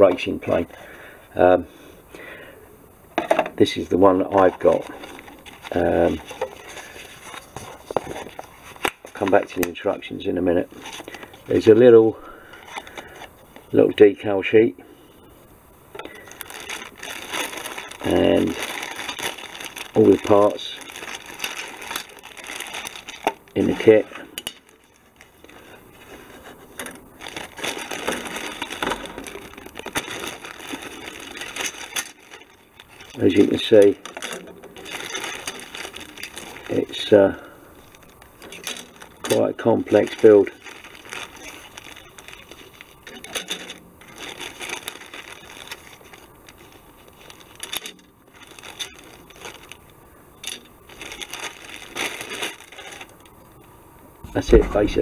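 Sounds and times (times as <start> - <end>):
plastic bag crinkling: 3.6 - 14.1, 15.9 - 53.7.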